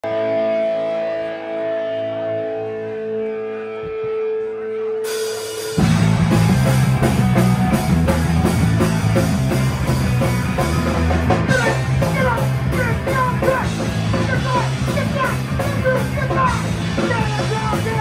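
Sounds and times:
electric guitar chord ringing: 0.0s - 11.9s
punk rock band playing: 0.0s - 18.0s.

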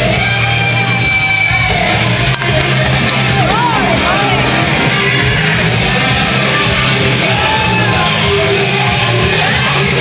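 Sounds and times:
rock music with electric guitar: 0.0s - 10.0s.

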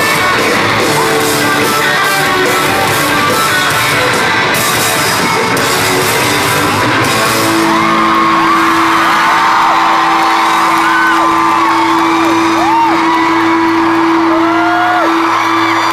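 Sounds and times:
crowd screaming and whooping: 0.0s - 15.9s.

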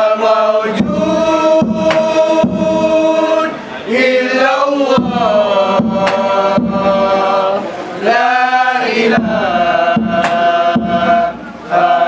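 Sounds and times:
men chanting in unison: 0.0s - 12.0s
frame drum strokes: 5.0s - 7.7s, 9.0s - 11.8s.

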